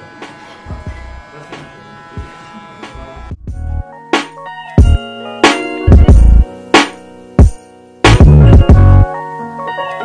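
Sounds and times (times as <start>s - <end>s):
electric hair clipper buzzing: 0.0s - 3.4s, 5.5s - 8.5s
background music with a beat: 2.2s - 10.0s.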